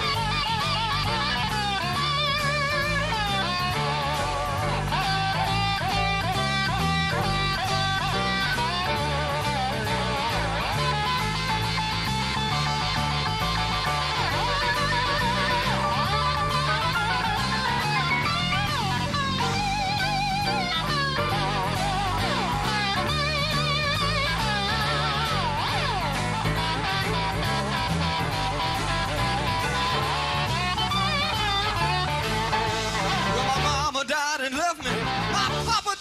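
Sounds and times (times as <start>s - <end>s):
electric guitar solo: 0.0s - 34.0s, 34.9s - 36.0s
blues-rock band playing: 0.0s - 34.1s, 34.8s - 36.0s.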